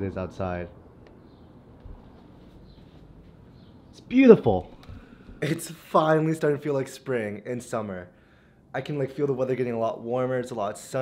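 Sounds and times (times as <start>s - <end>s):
faint outdoor ambience: 0.0s - 11.0s.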